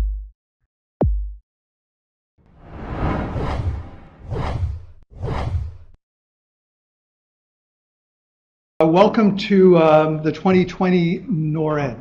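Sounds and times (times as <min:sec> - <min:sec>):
whoosh sound effects: 0:02.5 - 0:05.8.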